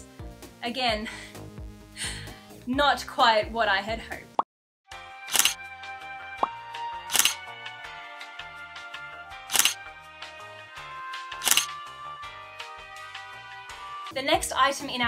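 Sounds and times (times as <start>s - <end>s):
sharp percussive hits: 5.3s - 5.6s, 6.4s - 7.4s, 9.5s - 9.8s, 11.4s - 11.7s.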